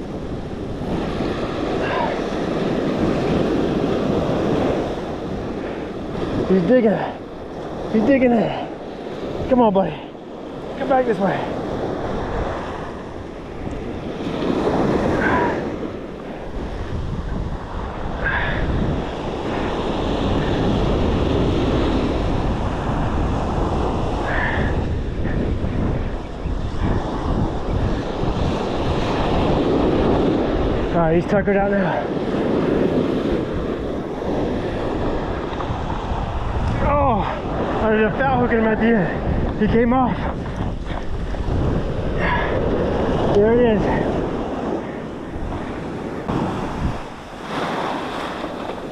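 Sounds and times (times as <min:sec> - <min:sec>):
surf breaking on sand: 0:00.0 - 0:48.9
wind buffeting microphone: 0:00.0 - 0:48.9.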